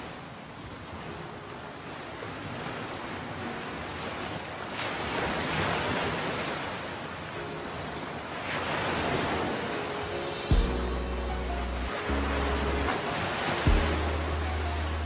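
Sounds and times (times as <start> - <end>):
ocean surf against rocks: 0.0 - 15.0.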